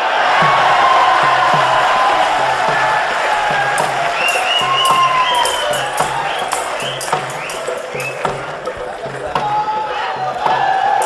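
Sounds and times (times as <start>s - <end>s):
crowd cheering: 0.0s - 11.0s
live dance music: 0.0s - 11.0s
dhol drum beat: 0.3s - 11.0s.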